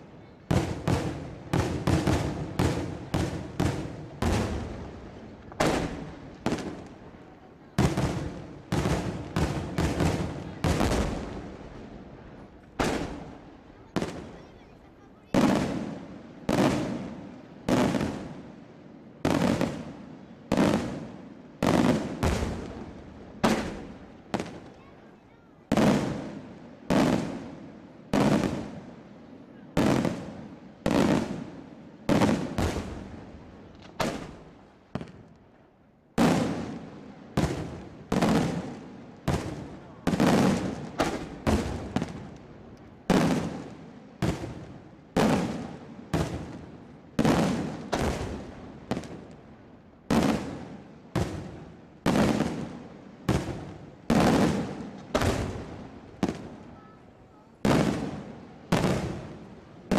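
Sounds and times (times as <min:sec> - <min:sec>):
fireworks bursting with echo: 0:00.0 - 0:59.9.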